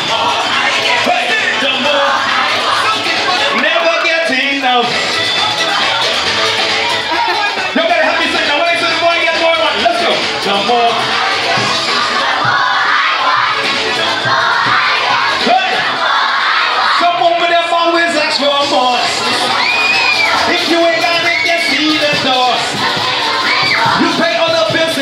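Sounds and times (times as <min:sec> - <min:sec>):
children cheering and shouting: 0:00.0 - 0:25.0
loud music: 0:00.0 - 0:25.0.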